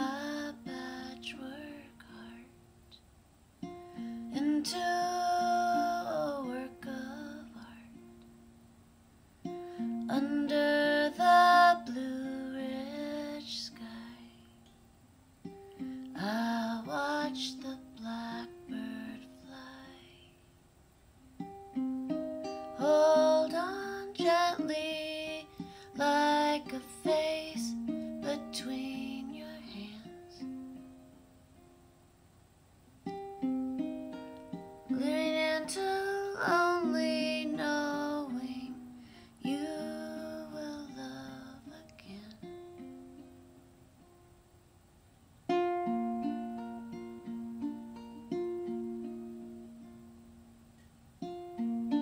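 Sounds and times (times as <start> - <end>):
person singing: 0.0 - 2.6, 4.0 - 8.1, 9.5 - 14.7, 15.8 - 20.4, 22.4 - 30.9, 34.5 - 42.9
plucked string instrument: 3.6 - 8.7, 9.4 - 20.4, 21.2 - 32.0, 33.0 - 44.3, 45.5 - 52.0.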